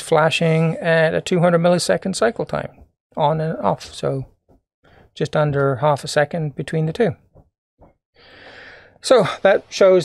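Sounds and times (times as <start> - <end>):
man speaking: 0.0 - 4.4, 5.2 - 7.3, 9.0 - 10.0
man breathing in: 8.2 - 9.0.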